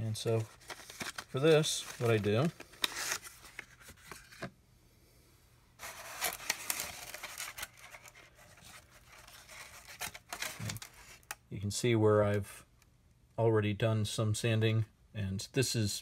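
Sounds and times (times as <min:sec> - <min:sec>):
scratchy scraping and rustling: 0:00.0 - 0:04.5, 0:05.8 - 0:11.3.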